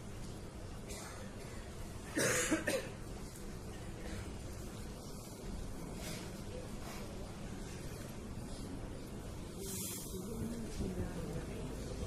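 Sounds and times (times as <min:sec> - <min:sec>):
person coughing: 0:00.9 - 0:03.0.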